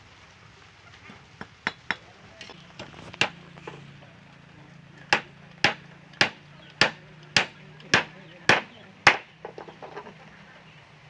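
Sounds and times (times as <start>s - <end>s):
hammer striking nail into wood: 5.1s - 9.3s.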